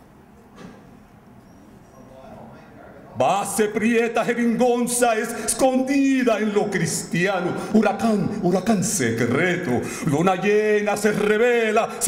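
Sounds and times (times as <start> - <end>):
faint short high squeaks: 0.8 - 2.3.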